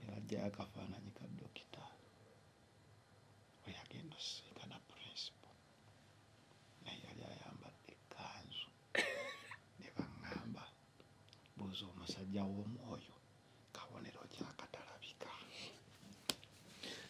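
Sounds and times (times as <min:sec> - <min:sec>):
person whispering: 0:00.8 - 0:02.0, 0:03.6 - 0:05.6, 0:06.8 - 0:08.7, 0:13.7 - 0:15.9.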